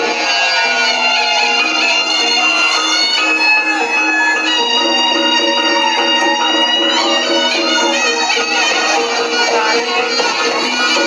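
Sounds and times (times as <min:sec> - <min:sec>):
reedy shawm long notes: 0:00.0 - 0:11.0.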